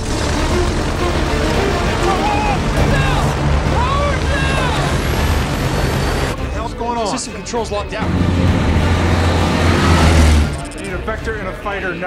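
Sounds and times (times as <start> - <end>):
aircraft engine roaring: 0.0 - 6.5, 8.0 - 10.9.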